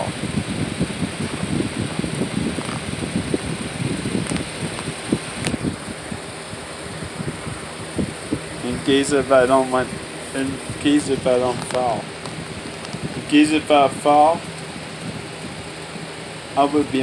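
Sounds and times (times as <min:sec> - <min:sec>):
fan airflow buffeting microphone: 0:00.0 - 0:17.0
steady hiss: 0:00.0 - 0:17.0.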